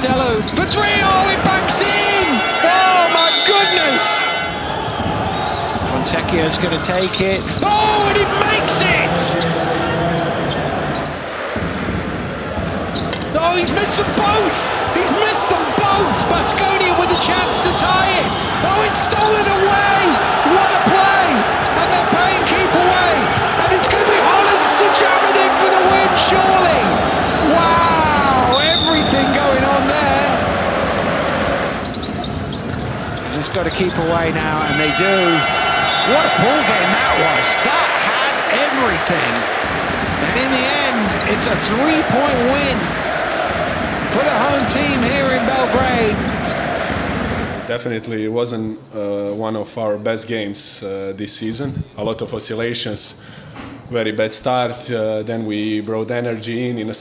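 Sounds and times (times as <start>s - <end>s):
loud crowd: 0.0s - 48.0s
sneaker squeaks on hardwood: 4.4s - 5.9s, 12.7s - 13.3s, 31.8s - 34.8s
basketball bouncing: 4.7s - 6.3s, 23.2s - 24.2s, 39.3s - 47.7s.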